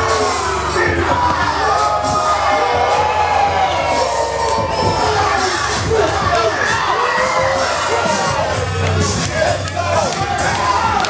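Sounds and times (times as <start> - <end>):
crowd cheering and shouting: 0.0 - 11.0
music with steady bass: 0.0 - 11.0.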